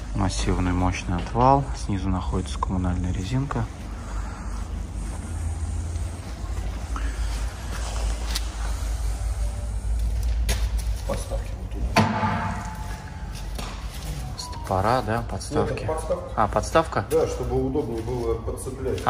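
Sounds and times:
sharp knocks: 12.0 - 12.9.

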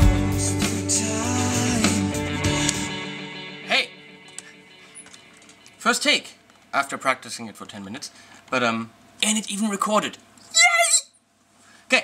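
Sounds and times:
overdriven electric guitar melody: 0.0 - 5.8
backing track: 0.0 - 6.3
person speaking: 3.7 - 4.0.

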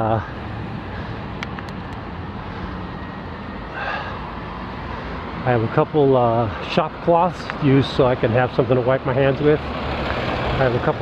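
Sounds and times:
bike tyre and road noise: 0.0 - 11.0.

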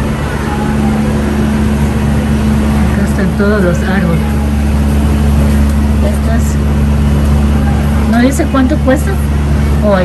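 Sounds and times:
faint voices: 0.0 - 10.0
low indoor hum: 0.0 - 10.0.

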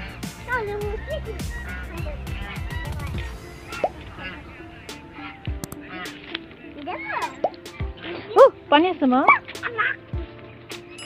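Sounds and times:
goose honking: 0.0 - 8.6.

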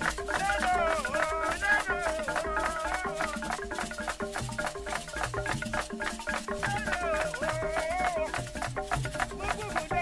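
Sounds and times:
pitched percussion notes: 0.0 - 10.0
shaker rattle: 0.0 - 10.0.

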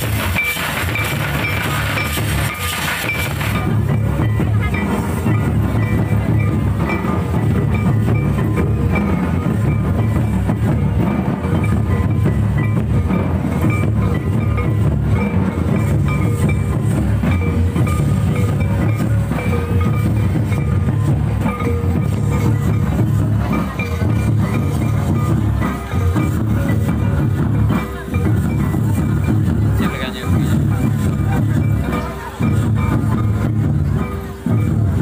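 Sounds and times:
folk dance music: 0.0 - 35.0.

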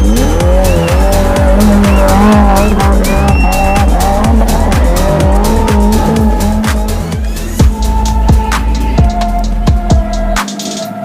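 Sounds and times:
car engine revving: 0.0 - 11.0
electronic music with steady beat: 0.0 - 11.0.

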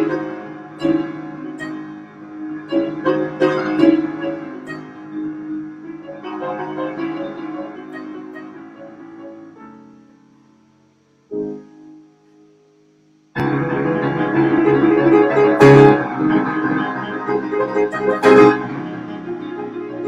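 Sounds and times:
solo piano: 0.0 - 20.0.

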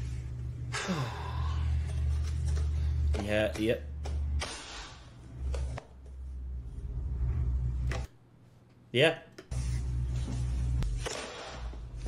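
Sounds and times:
low rumble: 6.4 - 7.9.

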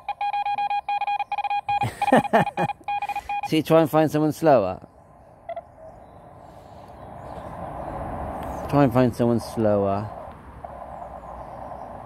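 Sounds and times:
faint morse code tone: 0.0 - 3.6.

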